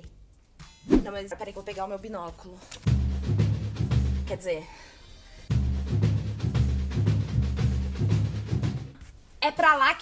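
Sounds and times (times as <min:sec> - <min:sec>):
music with heavy bass drum beat: 0:02.9 - 0:04.4, 0:05.5 - 0:08.9.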